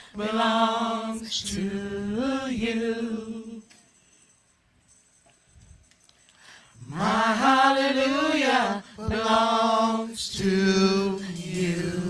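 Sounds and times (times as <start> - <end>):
gospel singers singing unaccompanied: 0.0 - 3.8, 6.8 - 12.0.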